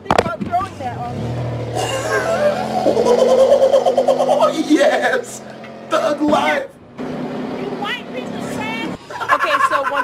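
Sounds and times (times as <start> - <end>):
outdoor street noise: 0.0 - 10.0
person crying out: 1.8 - 4.7.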